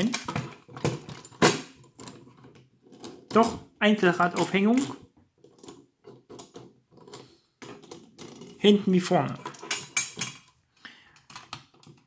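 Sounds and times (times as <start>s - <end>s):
toy trailer handling on wood: 0.0s - 10.6s.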